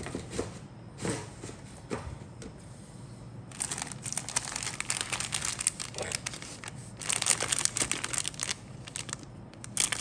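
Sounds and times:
plastic bag crinkling: 0:03.5 - 0:10.0.

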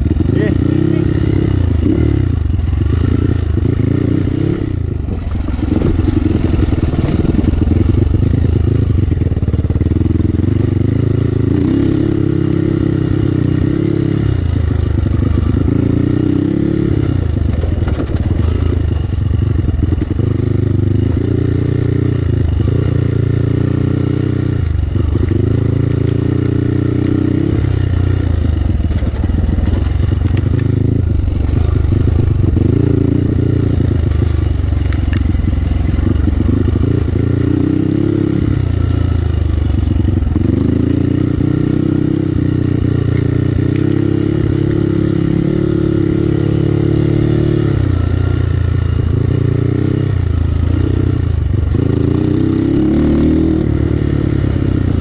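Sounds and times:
dirt bike engine revving: 0:00.0 - 0:55.0.

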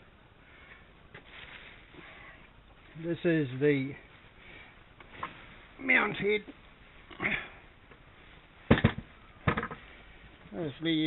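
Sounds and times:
soft breathy noise: 0:00.0 - 0:03.0, 0:04.0 - 0:05.8, 0:06.9 - 0:10.6
sharp knock with rattle: 0:08.7 - 0:09.8.

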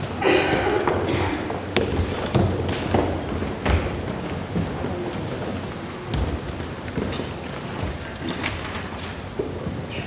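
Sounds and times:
people shuffling and stepping: 0:00.0 - 0:10.0
room noise: 0:00.0 - 0:10.0.

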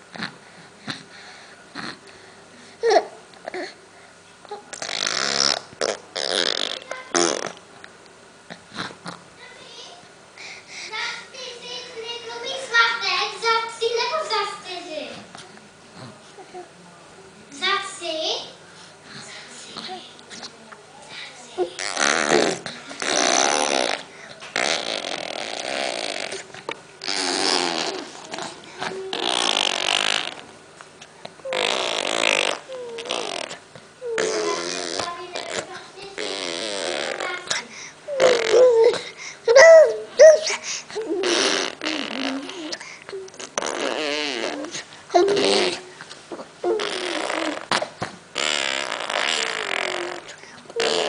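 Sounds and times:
baby blowing raspberries: 0:04.5 - 0:07.6, 0:21.6 - 0:30.5, 0:31.4 - 0:51.0.

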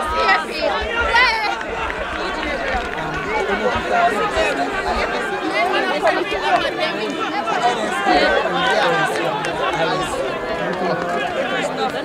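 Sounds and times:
overlapping chatter of voices: 0:00.0 - 0:12.0.

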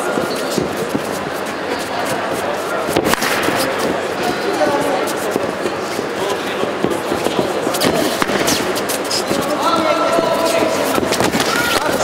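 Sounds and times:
hall background din: 0:00.0 - 0:12.0.

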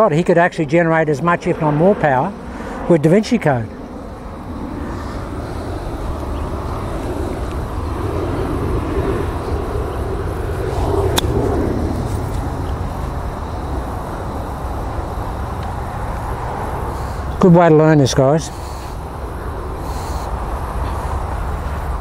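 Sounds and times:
low outdoor rumble: 0:00.0 - 0:22.0
golf club striking ball: 0:11.1 - 0:11.4.

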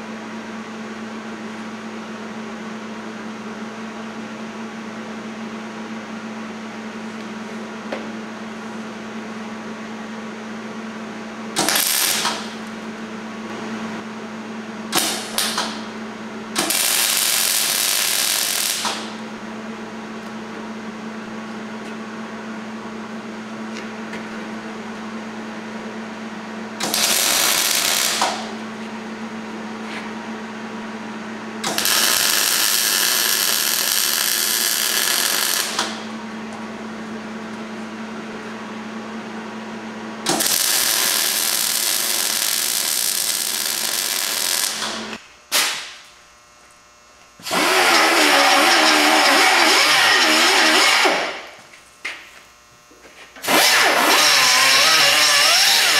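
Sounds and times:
steady hum: 0:00.0 - 0:55.9
welding arc bursts: 0:11.6 - 0:12.6, 0:14.9 - 0:15.8, 0:16.6 - 0:19.2, 0:26.8 - 0:28.5, 0:31.6 - 0:36.1, 0:40.3 - 0:46.1, 0:47.4 - 0:51.6, 0:53.4 - 0:55.9.

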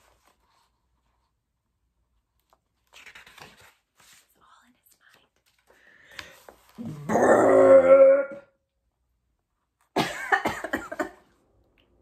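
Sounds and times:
paper pages rustling: 0:00.0 - 0:07.0.

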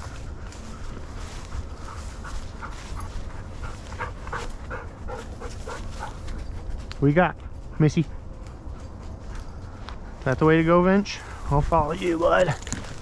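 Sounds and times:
dog panting: 0:01.2 - 0:06.6.

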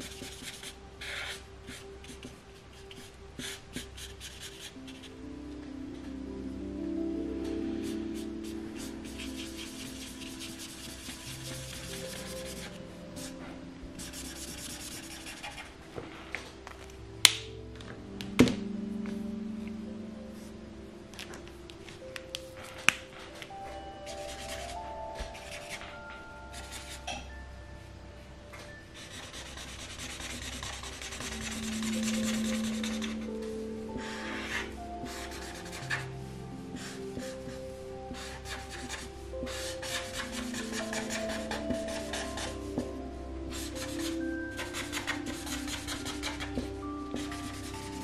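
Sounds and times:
soft background music: 0:00.0 - 0:48.0
marker scratching on paper: 0:07.8 - 0:13.3, 0:14.0 - 0:15.7, 0:24.2 - 0:25.9, 0:29.0 - 0:33.3, 0:34.0 - 0:36.0, 0:38.2 - 0:42.6, 0:43.6 - 0:48.0.

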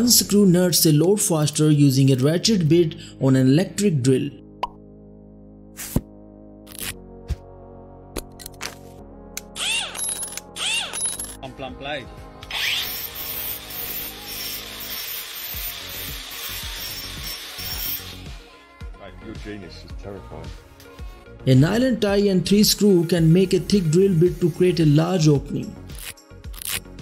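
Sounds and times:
background music: 0:00.0 - 0:27.0
angle grinder grinding metal: 0:12.4 - 0:18.4.

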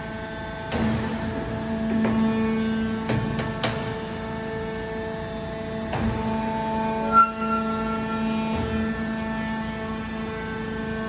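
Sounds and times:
roll forming machine humming: 0:00.0 - 0:11.0.

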